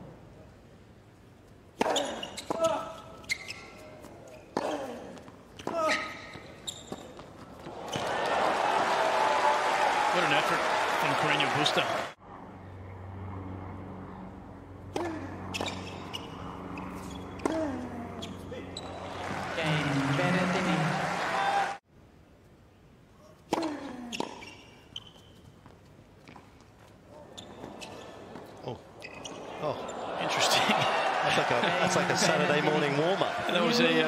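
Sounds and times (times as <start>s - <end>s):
crowd voices: 29.3s - 34.0s.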